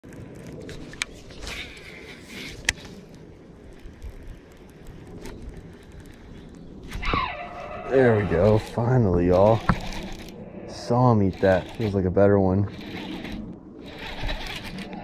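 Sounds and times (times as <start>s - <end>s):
man speaking: 7.9s - 9.6s, 10.7s - 12.7s
fishing reel being cranked: 8.4s - 10.4s, 11.0s - 12.1s, 12.7s - 15.0s.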